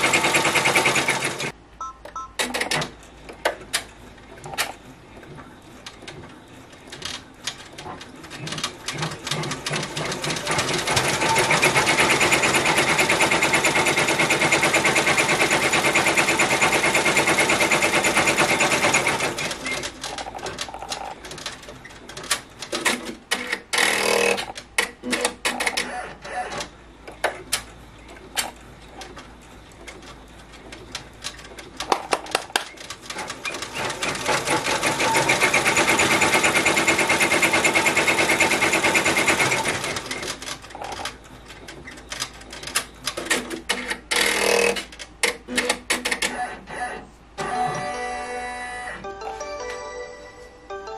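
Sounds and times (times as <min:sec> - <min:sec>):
embroidery machine stitching: 0:00.0 - 0:01.5, 0:08.4 - 0:21.5, 0:33.1 - 0:41.0.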